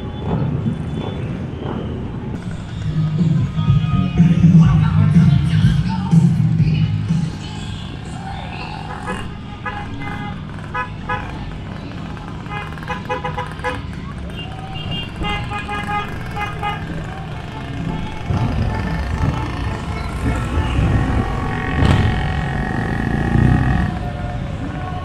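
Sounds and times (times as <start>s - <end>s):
low engine rumble: 0.0s - 25.0s
vehicle horns beeping: 8.5s - 11.7s, 12.4s - 23.9s
loud low drone: 16.2s - 25.0s.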